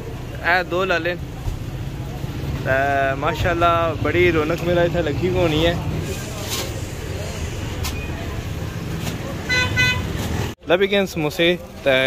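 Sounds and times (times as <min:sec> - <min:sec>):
street traffic rumbling: 0:00.0 - 0:12.0
vehicle horn tooting: 0:09.5 - 0:10.2.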